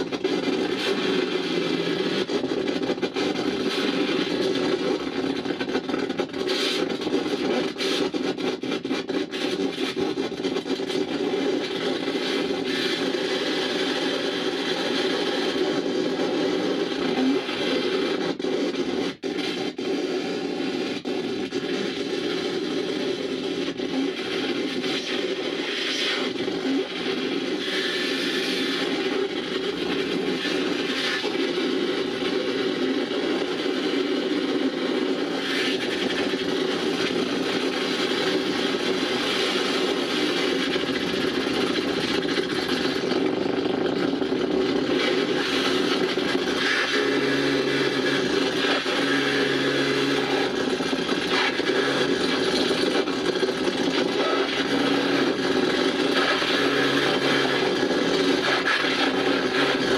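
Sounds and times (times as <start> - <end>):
grinding electronic noise: 0.0 - 59.9.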